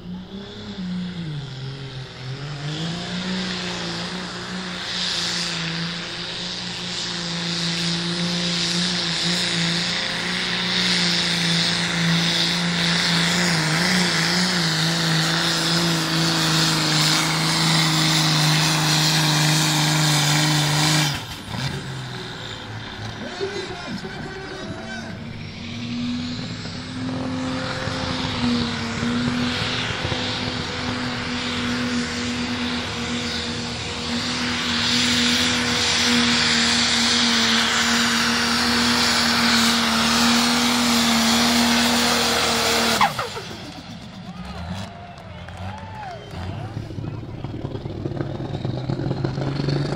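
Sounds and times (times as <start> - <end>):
tractor diesel engines at high revs: 0.0 - 49.9.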